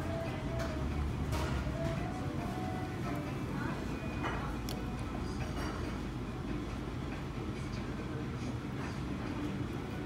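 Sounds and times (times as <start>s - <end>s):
restaurant background rumble: 0.0s - 10.0s.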